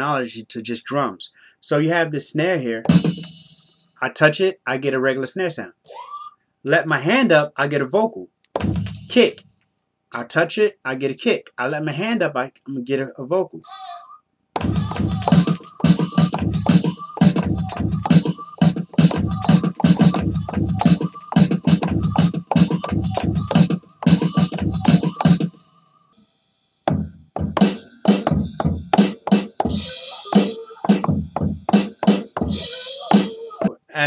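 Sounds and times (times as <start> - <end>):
drum samples kick and snare: 2.8 - 3.5, 8.6 - 9.4, 14.6 - 25.6, 26.9 - 33.8.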